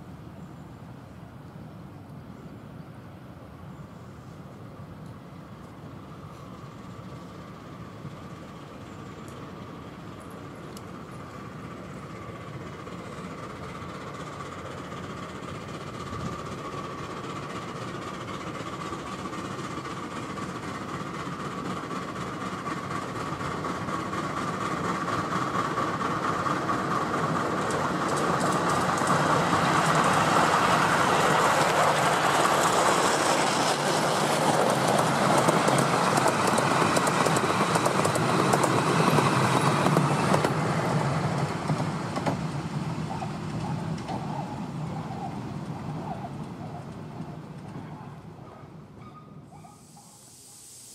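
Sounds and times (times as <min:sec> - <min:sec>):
miniature steam locomotive: 0:00.0 - 0:50.9
wheels clacking over rail joints: 0:12.6 - 0:49.8.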